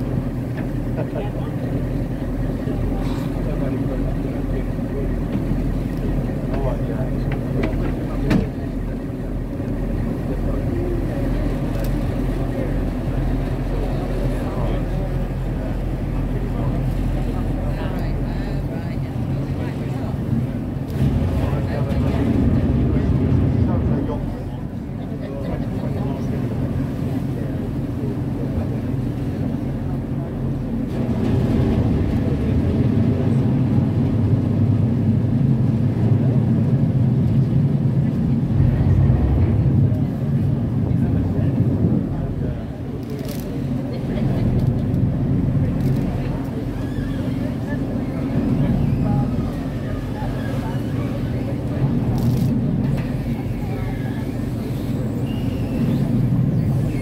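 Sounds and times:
boat engine humming: 0.0s - 57.0s
water noise: 0.0s - 57.0s.

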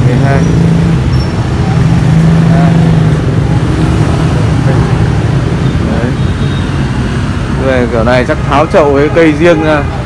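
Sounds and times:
motor traffic rumble: 0.0s - 10.0s.

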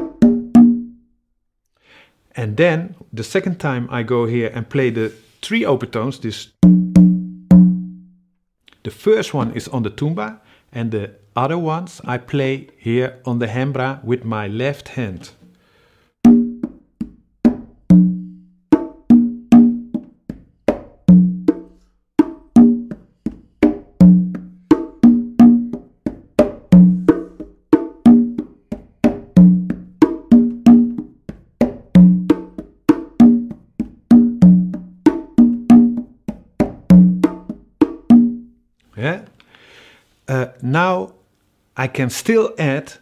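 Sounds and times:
congas and bongo drumming: 0.0s - 1.0s, 6.6s - 8.0s, 16.2s - 38.5s.

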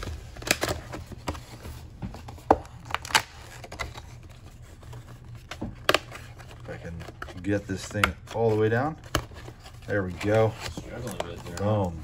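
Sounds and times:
cardboard rustling and scraping: 0.0s - 12.0s.

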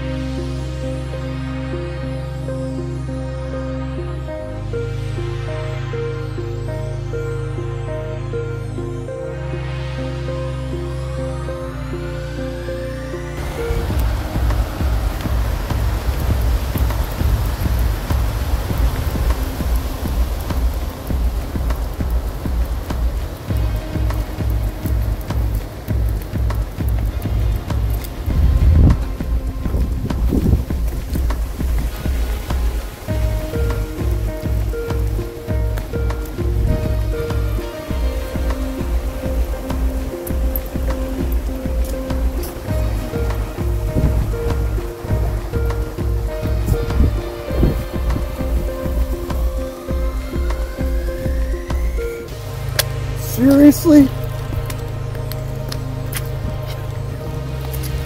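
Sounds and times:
music with steady bass beat: 0.0s - 58.0s.

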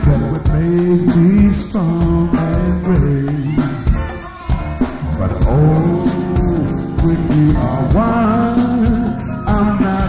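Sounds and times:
bass line: 0.0s - 10.0s
funk band playing: 0.0s - 10.0s
steady percussion beat: 0.0s - 10.0s.

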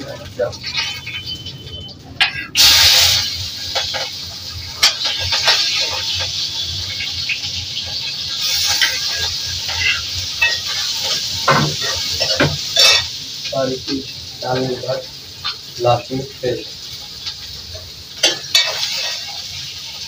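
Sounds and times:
greens sizzling in hot oil: 0.0s - 20.0s.

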